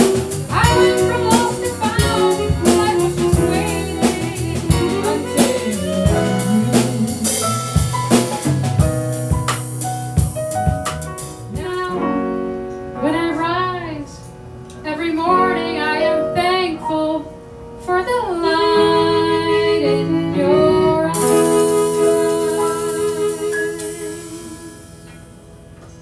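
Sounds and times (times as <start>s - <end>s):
harmonica melody: 0.0s - 8.0s
upright bass: 0.0s - 12.0s
piano: 0.0s - 26.0s
cymbals: 21.2s - 25.6s.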